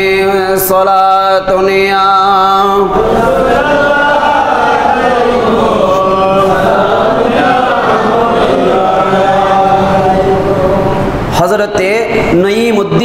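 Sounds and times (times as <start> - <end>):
man chanting devotional verse: 0.0 - 13.0.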